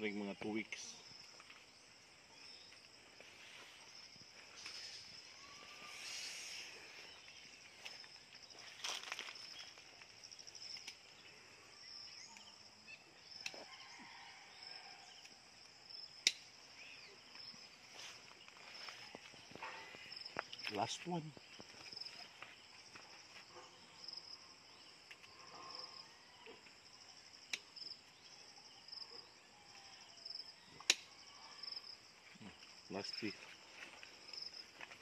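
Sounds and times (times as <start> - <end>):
insects chirring: 0.0 - 35.0
rustling of plants: 2.8 - 11.1, 17.3 - 23.5.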